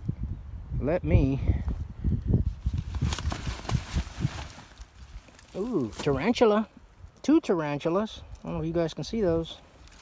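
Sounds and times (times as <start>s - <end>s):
footsteps in dry leaf litter: 2.8s - 6.3s.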